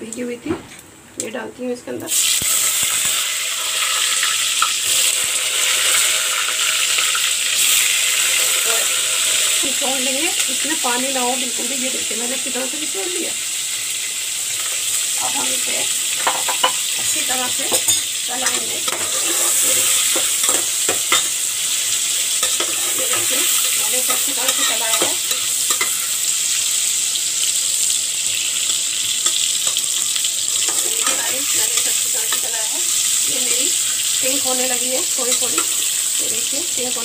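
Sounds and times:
food sizzling in hot oil: 0:02.0 - 0:37.0.

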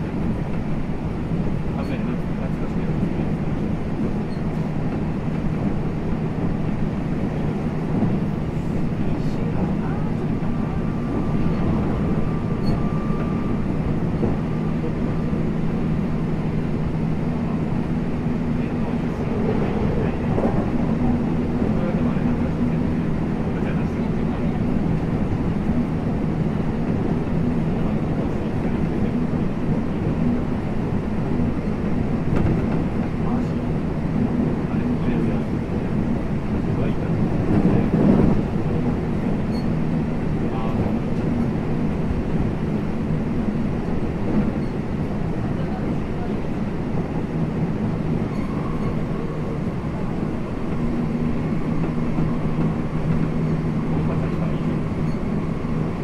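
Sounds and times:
train wheels rumbling on rail: 0:00.0 - 0:56.0
train motor hum: 0:02.6 - 0:29.2.

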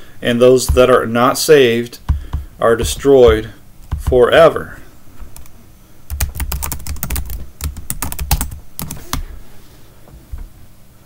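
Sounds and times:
computer keyboard typing: 0:06.1 - 0:09.2.

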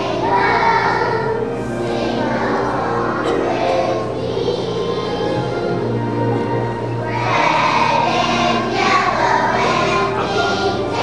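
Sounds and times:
children's choir singing: 0:00.0 - 0:11.0
instrumental accompaniment: 0:00.0 - 0:11.0.

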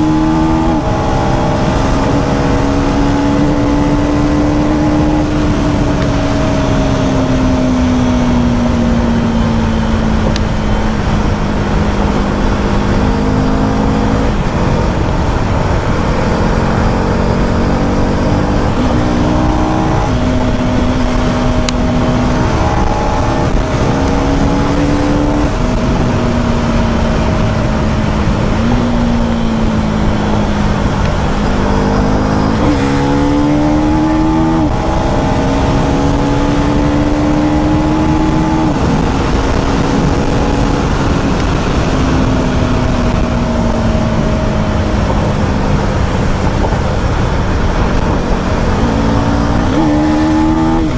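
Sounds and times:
motorcycle engine running: 0:00.0 - 0:50.9
wind rush on microphone: 0:00.0 - 0:50.9.

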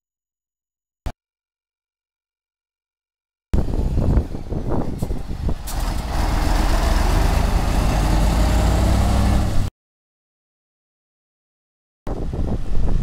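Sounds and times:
diesel truck engine running: 0:03.6 - 0:09.7.

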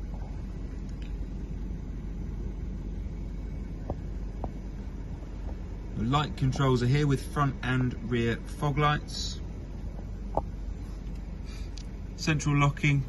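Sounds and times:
car cabin rumble: 0:00.0 - 0:13.0.

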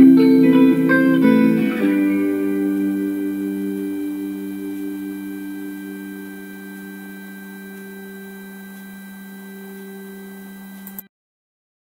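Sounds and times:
guitar chord ringing: 0:00.0 - 0:10.6.

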